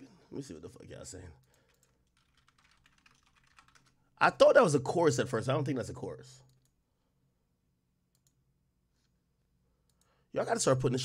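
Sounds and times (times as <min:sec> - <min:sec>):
computer keyboard typing: 0:01.5 - 0:04.0.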